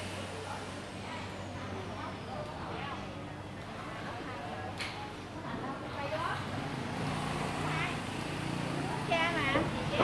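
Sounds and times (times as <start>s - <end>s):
voices of shoppers and vendors: 0.0s - 10.0s
small engine running: 6.6s - 9.1s.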